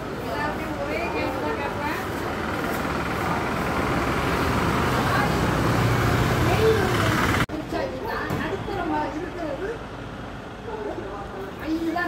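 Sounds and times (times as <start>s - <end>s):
vehicle engine humming: 0.0s - 7.7s
street noise: 0.0s - 12.0s
voices: 0.0s - 12.0s.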